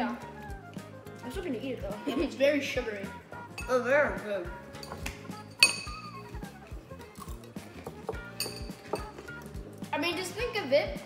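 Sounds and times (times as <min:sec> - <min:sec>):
background music with steady beat: 0:00.0 - 0:11.0
spoons clinking against glass bowls: 0:03.4 - 0:03.9, 0:04.7 - 0:09.5
spoons scraping bowls: 0:03.4 - 0:03.9, 0:04.7 - 0:09.8.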